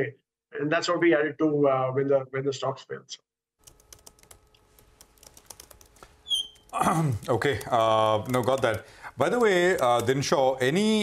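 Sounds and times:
computer keyboard typing: 3.6 - 11.0
person clearing throat: 6.8 - 7.4.

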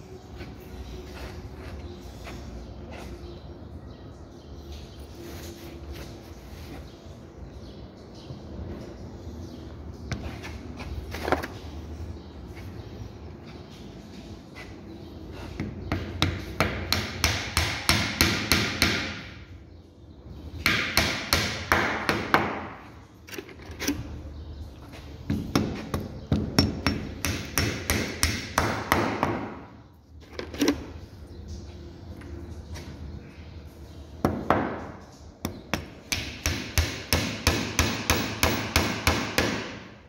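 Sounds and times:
hammer driving wooden dowels: 35.5 - 39.8.

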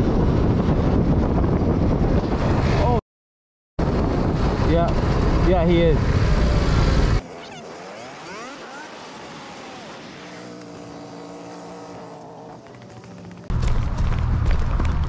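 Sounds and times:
motorcycle wind and road noise: 0.0 - 3.0, 3.8 - 15.0.

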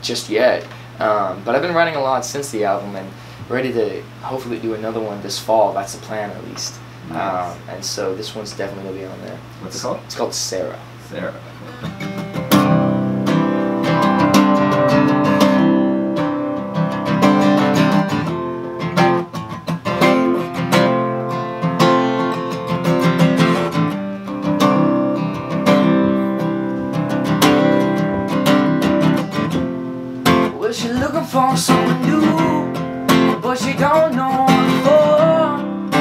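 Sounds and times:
acoustic guitar picked and strummed: 11.6 - 36.0.

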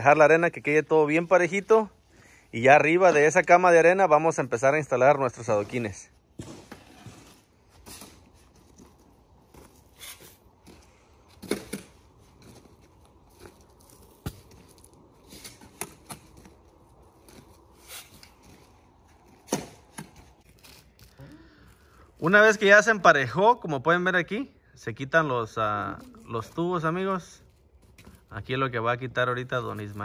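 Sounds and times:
sand scraping under shovel: 5.2 - 8.4.

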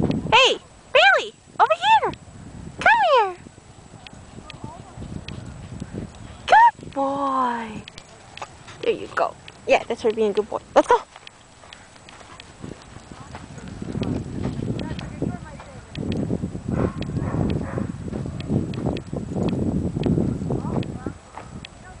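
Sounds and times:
footsteps on loose sand: 4.0 - 19.2, 20.1 - 22.0.

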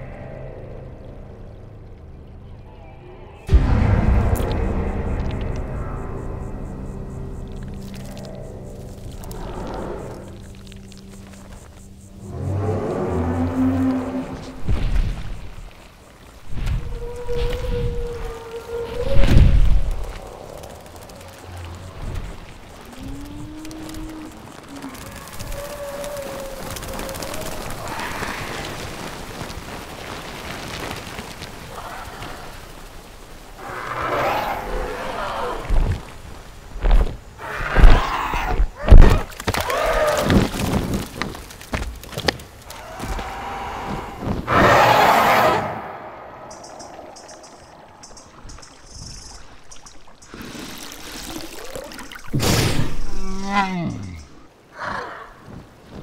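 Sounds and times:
low gliding creature call: 12.2 - 14.6, 16.8 - 21.8, 22.8 - 28.9, 33.6 - 35.8, 42.7 - 48.3
loud screeching creature calls: 42.7 - 46.1.

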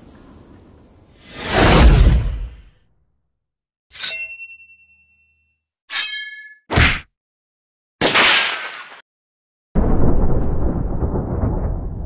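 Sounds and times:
metallic clang with ringing: 4.0 - 6.6.

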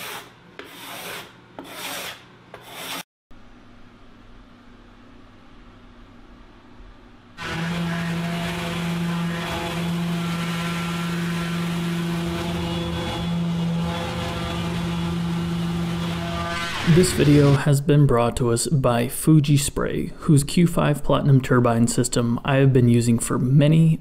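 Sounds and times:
orbital sander motor hum: 7.4 - 17.6.

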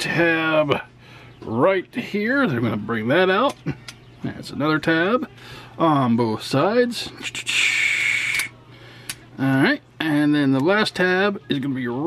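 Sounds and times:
person breathing close to microphone: 5.4 - 5.8.

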